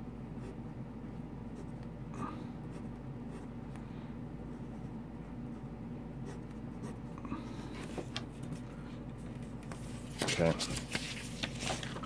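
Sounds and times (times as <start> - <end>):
low background hum: 0.0 - 12.0
pencil scratching on paper: 2.7 - 3.5.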